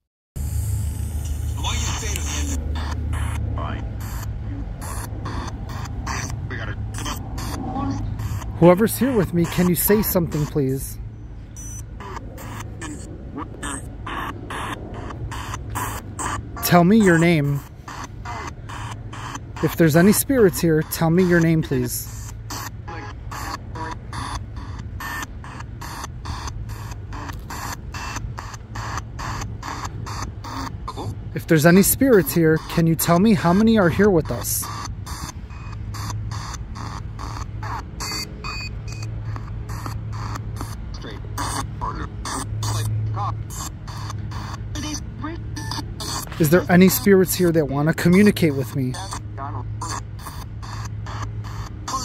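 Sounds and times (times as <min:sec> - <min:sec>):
steady low hum: 0:00.4 - 0:52.0
snatches of broadcast audio: 0:01.2 - 0:10.9, 0:11.6 - 0:52.0
clipped radio fragments: 0:01.2 - 0:11.0, 0:11.6 - 0:52.0
choppy bursts of radio static: 0:01.2 - 0:52.0.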